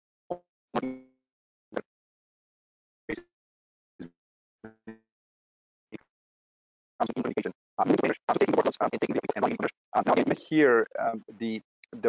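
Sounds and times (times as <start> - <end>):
man's garbled choppy voice: 7.0 - 12.0.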